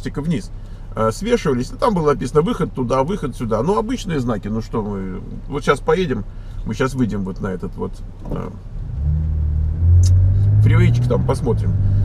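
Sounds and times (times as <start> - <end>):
car engine pulling away: 8.1 - 12.0.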